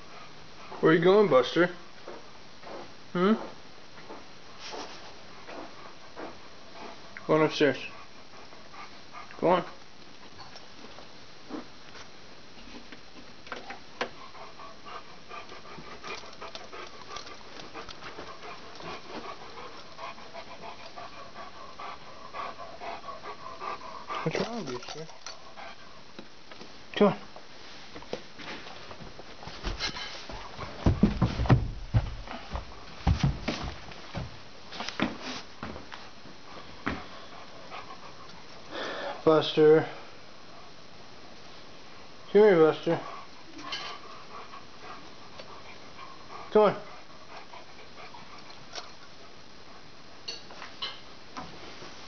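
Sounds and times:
dog panting: 0:00.0 - 0:01.3, 0:04.1 - 0:09.8, 0:14.0 - 0:26.1, 0:29.6 - 0:33.8, 0:36.4 - 0:39.2, 0:42.4 - 0:50.0
dog paws thumping on stairs: 0:28.1 - 0:34.4.

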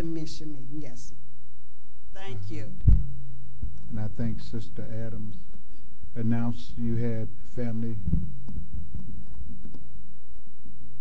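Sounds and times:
steady low hum: 0:00.0 - 0:11.0
microphone handling thumps: 0:02.7 - 0:04.0, 0:07.6 - 0:10.0.

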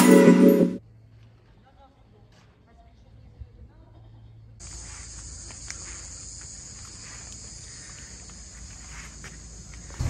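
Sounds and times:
cicadas buzzing: 0:04.6 - 0:10.0.

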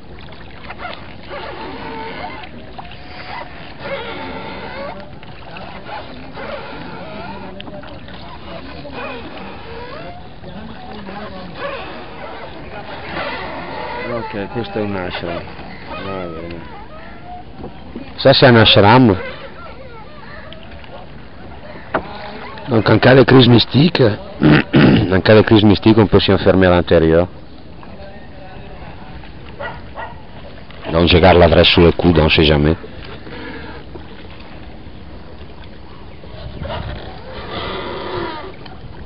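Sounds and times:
rowboat moving on water: 0:00.0 - 0:39.0
oar knocking against boat: 0:17.5 - 0:19.5, 0:20.2 - 0:22.7.

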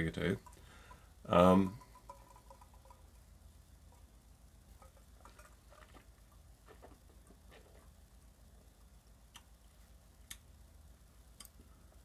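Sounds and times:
mouth smacking and clicks: 0:09.3 - 0:09.6, 0:10.2 - 0:10.5.

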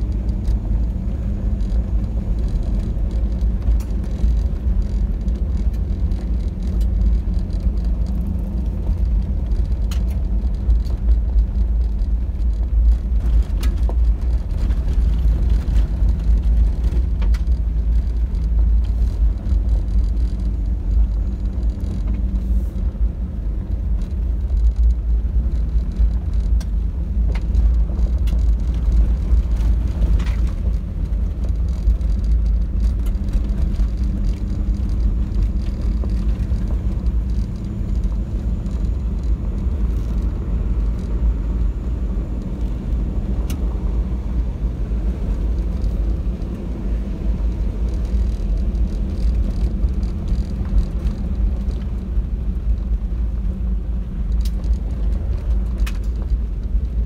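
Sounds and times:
vehicle driving on gravel road: 0:00.0 - 0:57.0.

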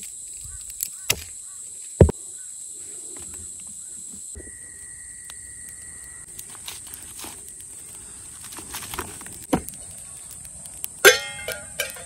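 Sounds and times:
lower insect tone: 0:00.0 - 0:10.6
insects chirring: 0:00.0 - 0:12.0
campfire crackling: 0:02.8 - 0:12.0.

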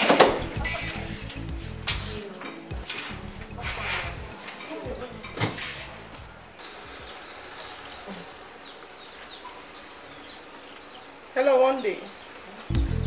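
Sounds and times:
small birds chirping: 0:00.4 - 0:13.0.

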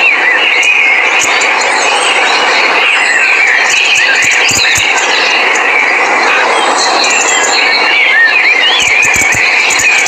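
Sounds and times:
high chirping calls: 0:00.0 - 0:10.0.

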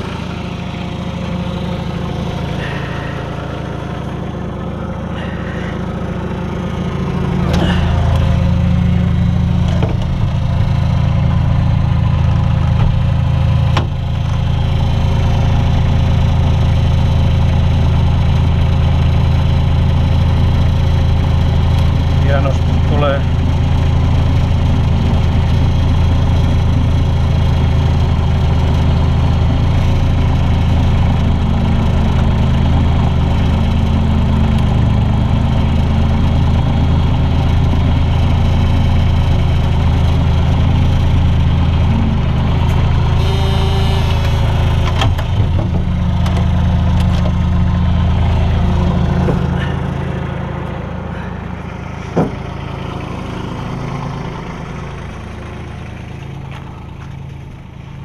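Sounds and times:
loader engine running: 0:00.0 - 0:58.0.

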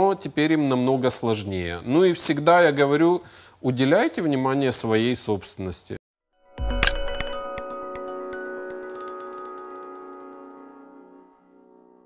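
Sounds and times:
chime-like mallet jingle: 0:06.4 - 0:12.0.

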